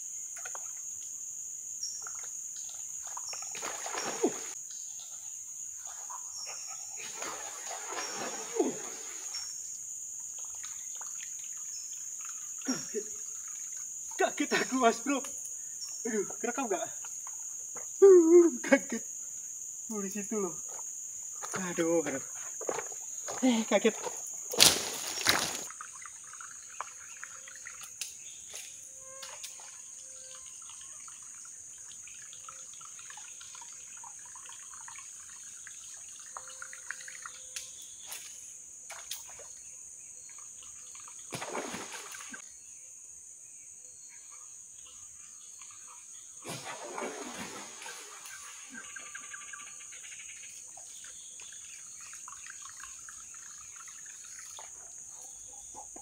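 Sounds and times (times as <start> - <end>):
insects droning: 0.0 - 56.0
splashing in a creek: 0.4 - 1.0, 1.8 - 19.1, 19.9 - 42.4, 45.5 - 56.0.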